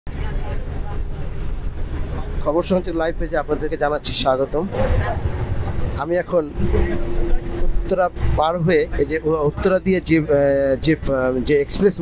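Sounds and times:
engine and road rumble in car: 0:00.1 - 0:12.0.

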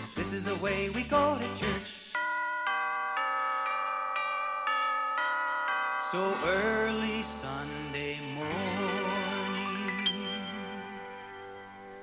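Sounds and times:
bell chimes: 0:02.1 - 0:12.0.

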